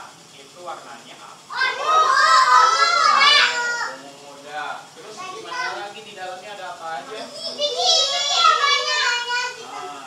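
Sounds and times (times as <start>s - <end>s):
high-pitched child's call: 1.5s - 4.0s, 7.3s - 10.0s
children talking and calling out: 1.5s - 4.2s, 5.0s - 6.2s, 7.0s - 10.0s.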